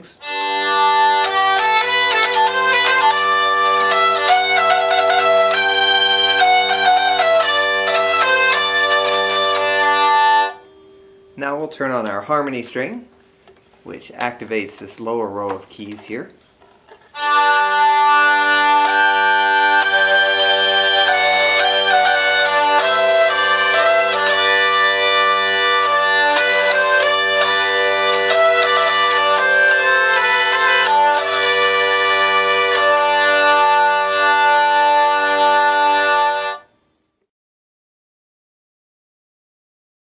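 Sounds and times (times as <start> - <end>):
hurdy-gurdy drone and melody: 0.2 - 12.2, 17.1 - 36.7.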